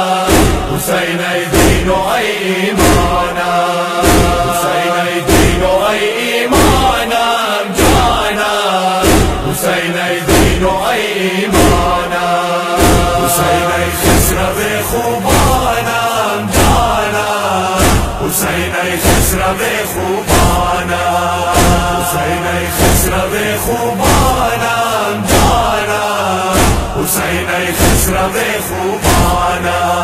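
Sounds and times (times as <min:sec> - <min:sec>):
men chanting in unison: 0:00.0 - 0:30.0
chest-beating thuds: 0:00.3 - 0:07.1, 0:07.7 - 0:12.2, 0:12.8 - 0:29.9.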